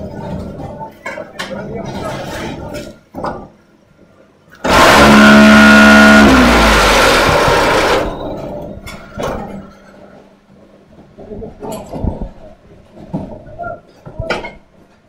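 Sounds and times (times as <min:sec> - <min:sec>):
machine vibrators buzzing: 0:04.6 - 0:09.0
machine clanks: 0:04.6 - 0:10.2.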